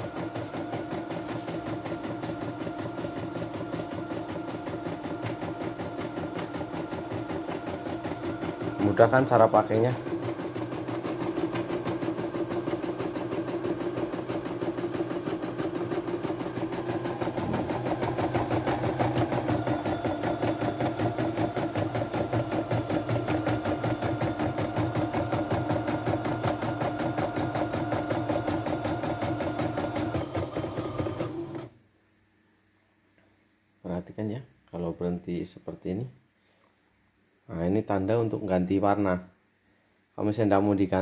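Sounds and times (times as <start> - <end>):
embroidery machine stitching: 0.0 - 31.7.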